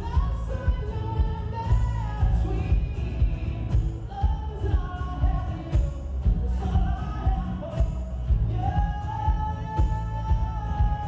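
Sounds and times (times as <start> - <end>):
drums: 0.0 - 11.0
man singing: 0.0 - 11.0
strummed acoustic guitar: 0.0 - 11.0.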